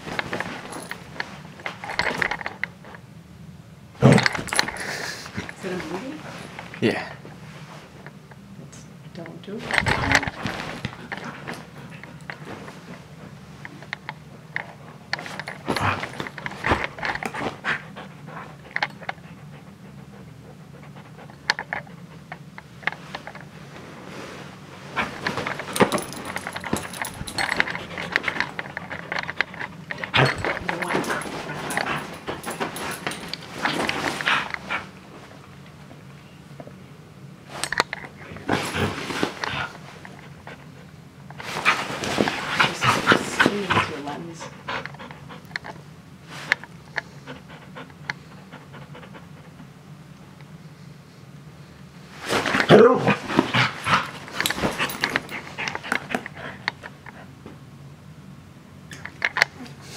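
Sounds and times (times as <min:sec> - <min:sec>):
dog panting: 0:16.9 - 0:22.4, 0:41.6 - 0:45.6, 0:47.0 - 0:49.7, 0:53.3 - 0:57.3.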